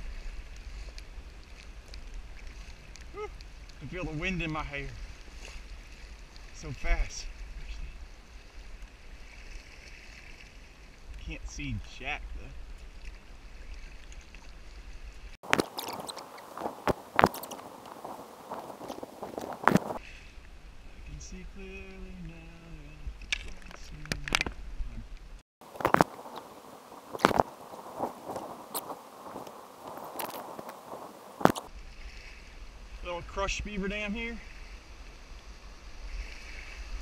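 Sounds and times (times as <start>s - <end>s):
kayak paddle splashes: 0.0s - 11.4s, 12.5s - 20.6s, 25.6s - 33.0s, 34.4s - 37.0s
rushing water: 0.0s - 22.2s, 23.1s - 37.0s
wind rumble on microphone: 6.9s - 33.0s.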